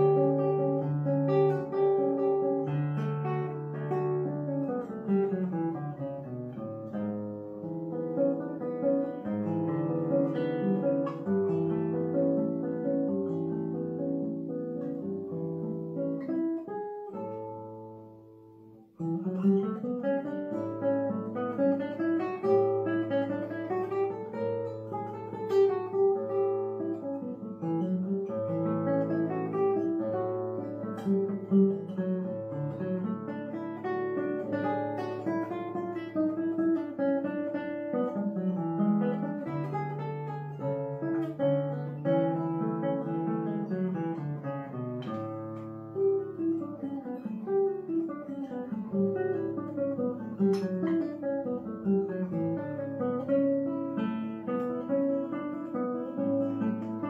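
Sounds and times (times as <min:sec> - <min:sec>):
fingerpicked classical guitar: 0:00.0 - 0:57.0.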